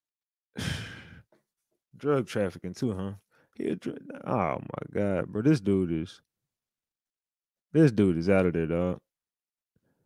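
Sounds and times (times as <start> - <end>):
man sighing heavily: 0.6 - 1.3.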